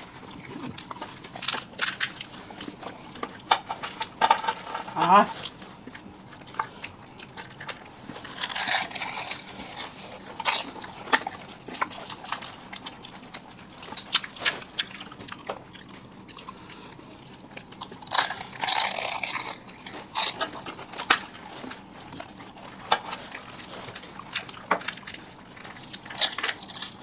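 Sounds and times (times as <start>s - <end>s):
people crunching crisp snacks: 0.0s - 27.0s.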